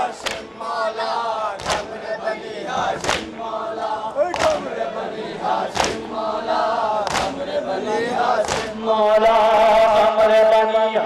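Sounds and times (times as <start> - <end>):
crowd of men chanting: 0.0 - 10.8
man singing through loudspeaker: 0.0 - 11.0
unison chest-beating: 1.6 - 2.0, 2.8 - 3.4, 4.2 - 4.8, 5.6 - 6.2, 6.9 - 7.6, 8.2 - 8.8.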